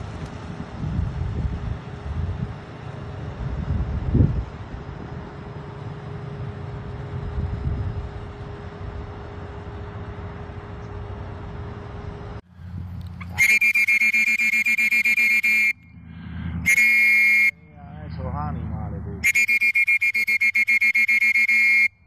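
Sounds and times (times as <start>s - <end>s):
wind rumbling on microphone: 0.0s - 13.4s
pulsing horn-like tone: 13.3s - 22.0s.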